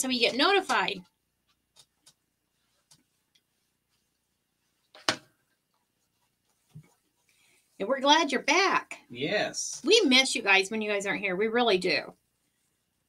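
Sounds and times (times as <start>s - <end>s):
faint clicks and handling noises: 0.6s - 4.2s.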